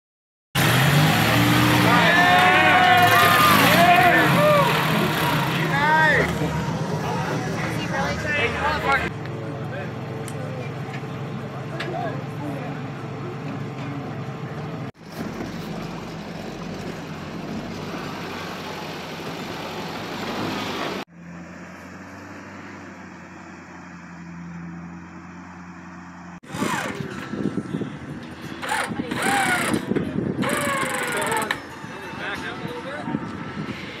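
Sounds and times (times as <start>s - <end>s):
off-road vehicle engines running: 0.6s - 34.0s
people shouting: 1.8s - 9.1s.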